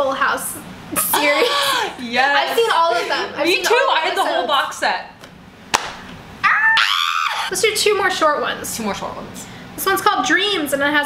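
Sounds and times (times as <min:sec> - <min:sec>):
sharp smack: 0:05.7 - 0:06.1
woman squealing laugh: 0:06.4 - 0:07.5.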